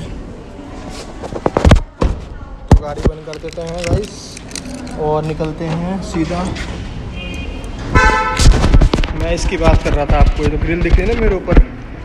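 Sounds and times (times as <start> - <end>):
car horn: 7.1 - 8.8.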